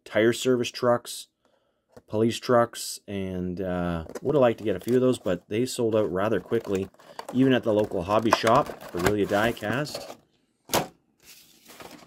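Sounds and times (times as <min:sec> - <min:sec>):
plastic blister pack rustle: 0:04.1 - 0:10.2, 0:11.2 - 0:12.0.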